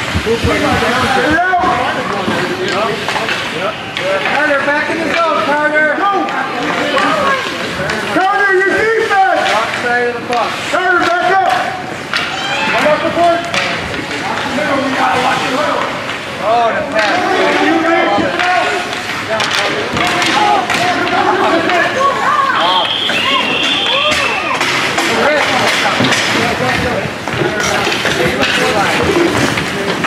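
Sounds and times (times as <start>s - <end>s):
hockey sticks and puck clacking: 0.0s - 30.0s
voices calling and shouting: 0.0s - 30.0s.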